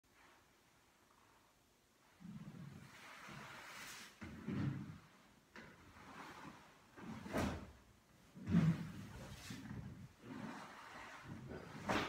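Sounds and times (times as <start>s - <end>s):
soft cloth rustle: 0.1s - 12.0s.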